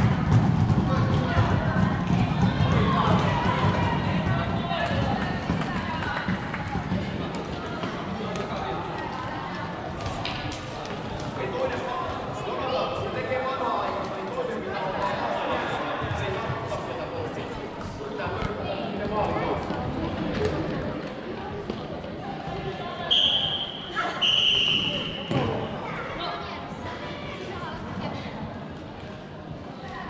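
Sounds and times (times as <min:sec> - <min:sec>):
referee's whistle blasts: 0:23.1 - 0:25.4.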